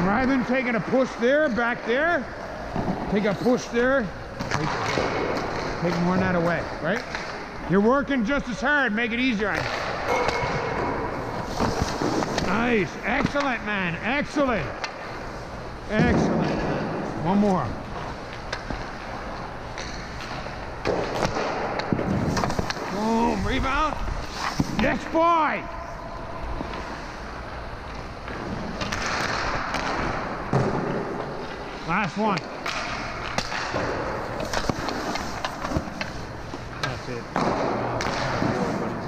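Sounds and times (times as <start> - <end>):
skates scraping on ice: 11.2 - 13.4, 19.9 - 25.2, 32.9 - 39.0
puck and stick knocking on ice: 32.4 - 36.2.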